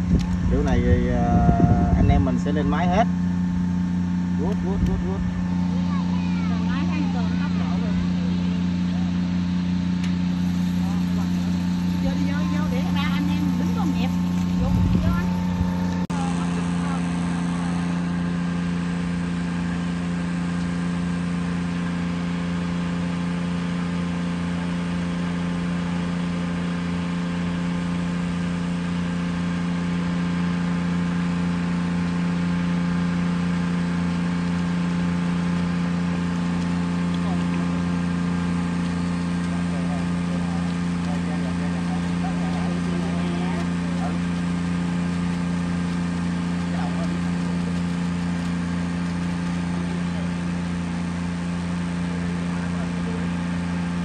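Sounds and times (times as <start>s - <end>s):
aerator motors humming: 0.0s - 54.0s.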